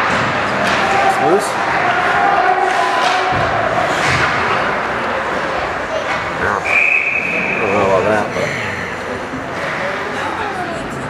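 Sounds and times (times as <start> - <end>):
voices: 0.6 - 11.0
referee whistle: 6.6 - 7.8.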